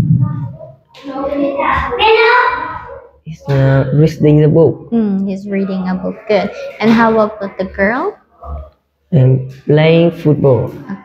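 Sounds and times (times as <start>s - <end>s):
boy's hesitant half-sung um: 4.9s - 8.8s.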